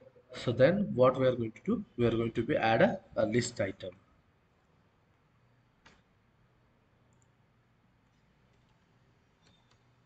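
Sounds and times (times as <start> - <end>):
computer mouse clicks: 5.8 - 6.1, 7.1 - 7.4, 8.0 - 10.0.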